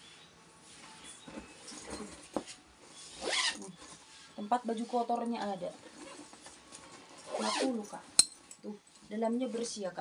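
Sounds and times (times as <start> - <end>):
zipper pulled open: 3.0 - 3.8, 5.8 - 8.0.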